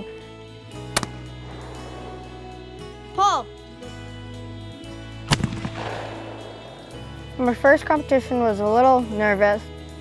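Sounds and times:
shotgun shot echoing: 0.9 - 2.8, 5.3 - 7.4.

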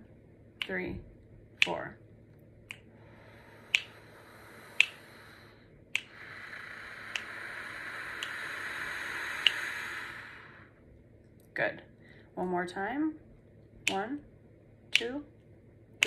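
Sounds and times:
person breathing in and out: 2.8 - 10.9, 12.0 - 12.4
sharp metronome clicks: 3.6 - 5.4, 6.0 - 6.3, 6.9 - 7.5, 14.9 - 15.2.

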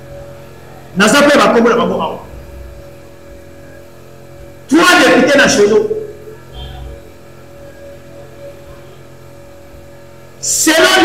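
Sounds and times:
low electrical hum: 0.0 - 11.0
man speaking loudly: 1.0 - 2.4, 4.7 - 6.1, 10.4 - 11.0.

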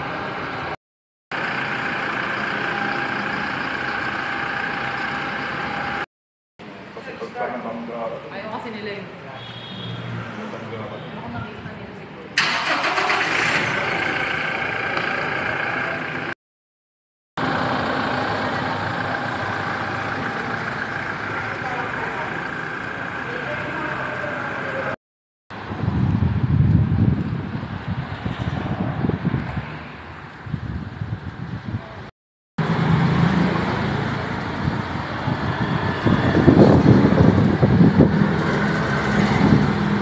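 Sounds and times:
voices: 10.4 - 16.4, 17.5 - 25.0
car engine running: 17.4 - 25.0.

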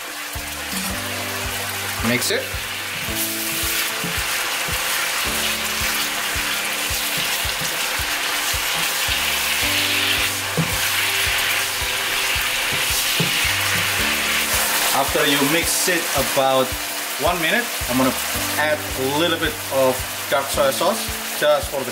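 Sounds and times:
meat sizzling in a wok: 0.0 - 21.9
wooden spatula stirring: 2.8 - 5.2, 5.8 - 15.1.

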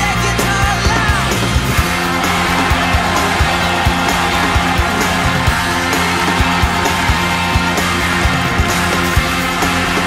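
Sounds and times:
upbeat dance music: 0.0 - 10.0.

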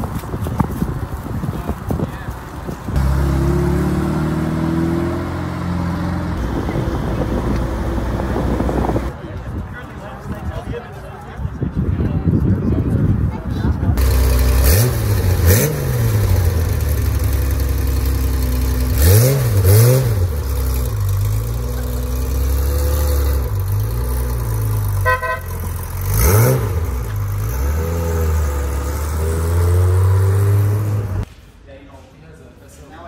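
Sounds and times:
car engine revving: 3.0 - 9.1, 14.0 - 31.3.

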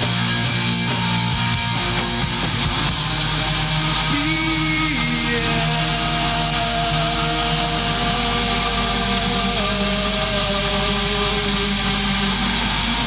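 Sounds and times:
rock band with distorted guitars: 0.0 - 13.0.

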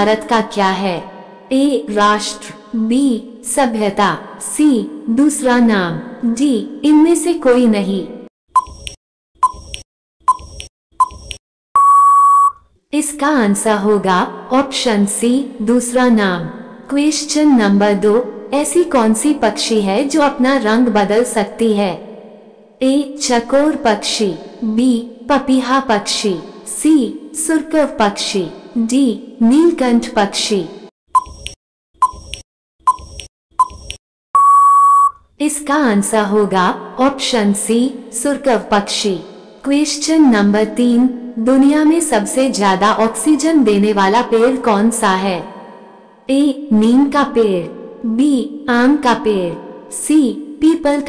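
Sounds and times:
steady timer beep: 8.6 - 12.6, 31.2 - 35.2
long steady beep: 11.8 - 12.6, 34.4 - 35.2
timer tick: 31.2 - 34.0.

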